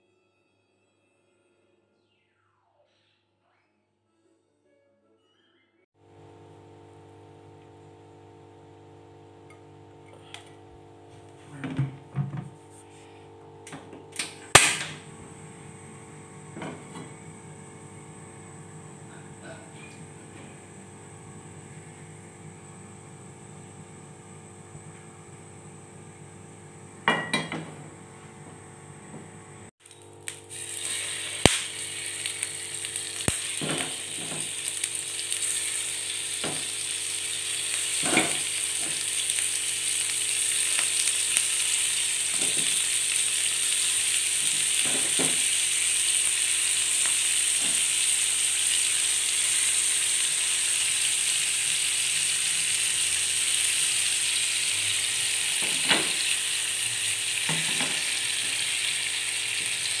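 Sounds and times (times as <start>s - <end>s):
squid sizzling in hot oil: 29.9s - 60.0s.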